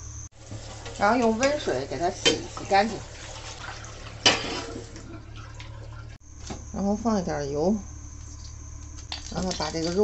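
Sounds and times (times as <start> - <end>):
tap water running into a bowl: 0.4 - 6.2.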